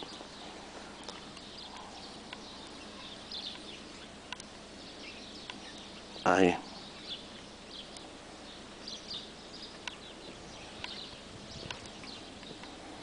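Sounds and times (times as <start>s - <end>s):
faint bird chirps: 0.0s - 13.0s
light ticks: 4.3s - 4.5s, 5.4s - 5.6s, 9.7s - 10.0s, 10.8s - 11.0s, 11.6s - 12.8s.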